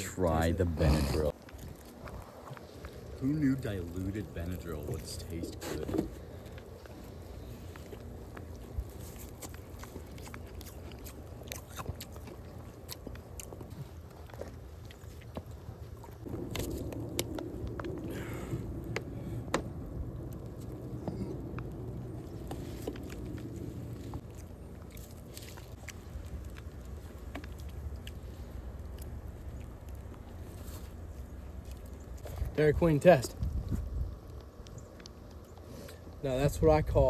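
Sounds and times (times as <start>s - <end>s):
low hum: 0.0s - 32.6s
crunching and chewing ice: 0.0s - 37.0s
low steady rumble: 0.0s - 37.0s.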